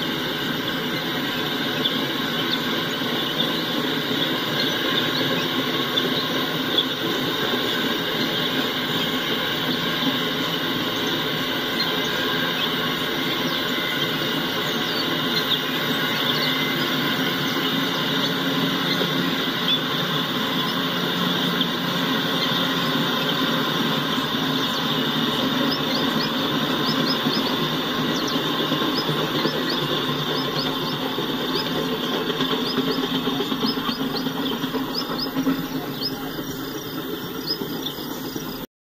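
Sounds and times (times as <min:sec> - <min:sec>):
train wheels clattering on rails: 0:00.0 - 0:38.6.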